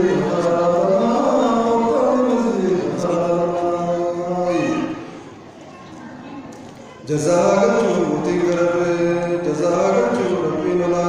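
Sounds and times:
man chanting into a microphone: 0:00.0 - 0:05.1, 0:07.0 - 0:11.0.

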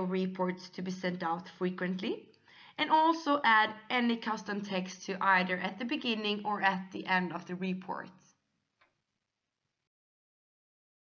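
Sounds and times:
narrator's voice: 0:00.0 - 0:02.2, 0:02.8 - 0:08.1.

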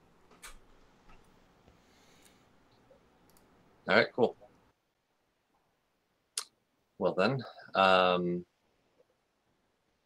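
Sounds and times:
faint sharp clicks: 0:01.7 - 0:03.5.

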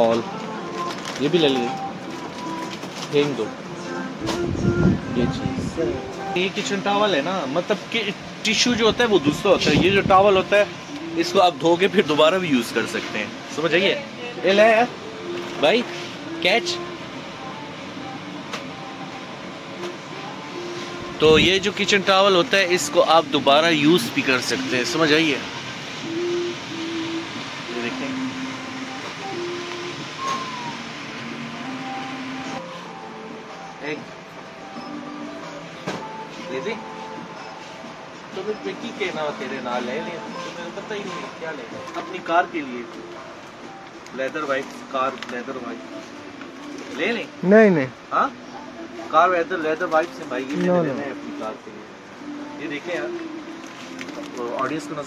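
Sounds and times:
shop background hum: 0:00.0 - 0:55.0
man speaking: 0:05.2 - 0:15.0, 0:21.2 - 0:25.4, 0:50.0 - 0:51.6.

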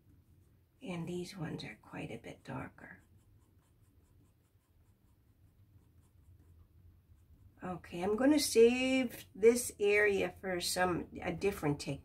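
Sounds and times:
pencil scratching on paper: 0:00.1 - 0:08.9.

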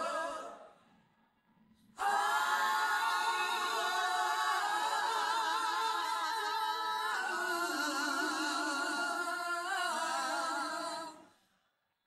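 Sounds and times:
female backing singers harmonizing: 0:00.0 - 0:00.8, 0:02.0 - 0:11.3.

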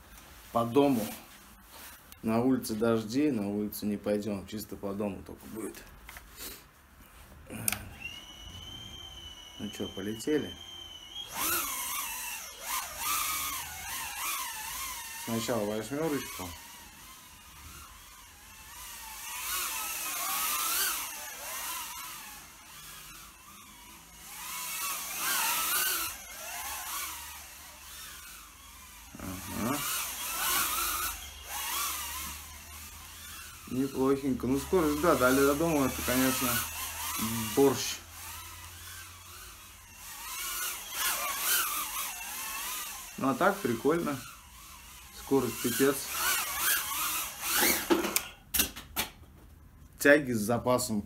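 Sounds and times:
drone motors whining: 0:07.5 - 0:48.4.

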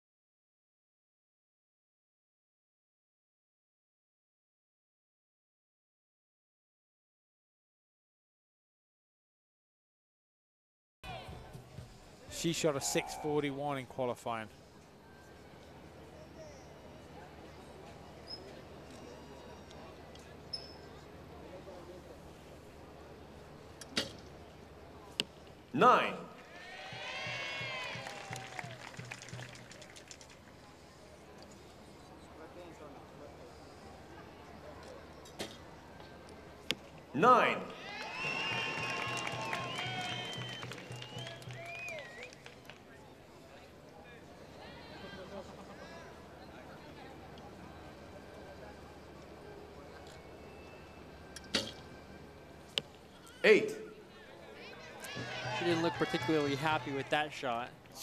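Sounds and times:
arrow striking target: 0:51.5 - 0:51.8.

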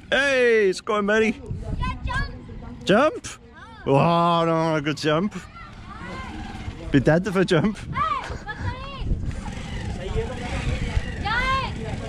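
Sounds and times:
distant children shouting: 0:04.6 - 0:06.9, 0:07.9 - 0:12.0.

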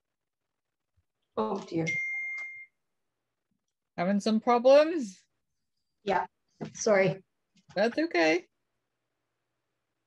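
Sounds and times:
high electronic beep: 0:01.9 - 0:02.8.

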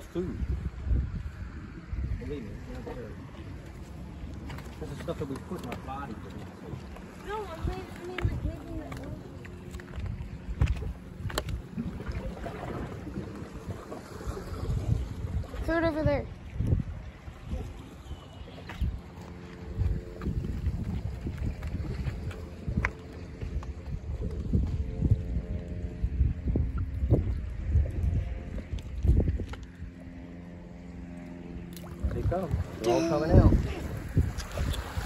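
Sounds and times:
wind gusting over microphone: 0:00.0 - 0:31.2, 0:31.8 - 0:35.0
low motor drone: 0:00.0 - 0:35.0.

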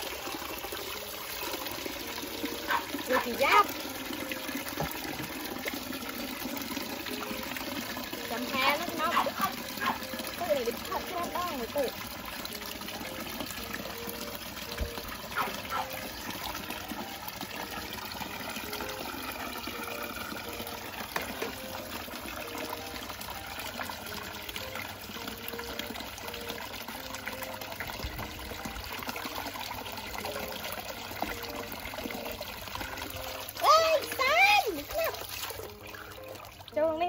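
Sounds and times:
hose water splashing into basin: 0:00.0 - 0:37.0.

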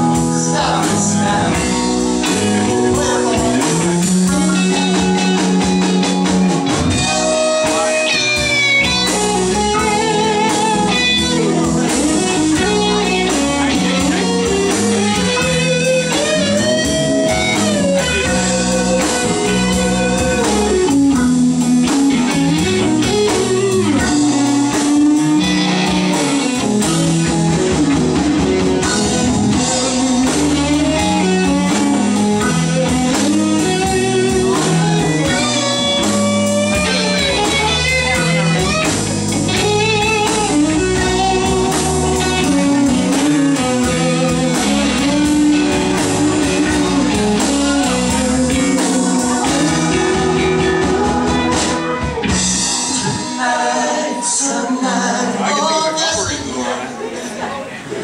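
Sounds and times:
electric guitar lead: 0:00.0 - 0:56.8
live rock band: 0:00.0 - 0:58.0.

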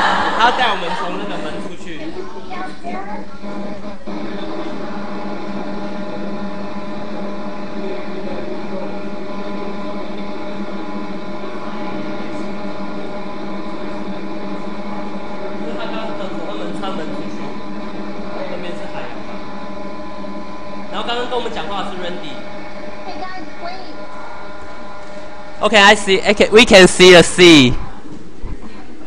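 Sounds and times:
faint voices: 0:00.0 - 0:24.3
ship machinery drone: 0:00.0 - 0:28.4
steady held tones: 0:00.0 - 0:28.4.

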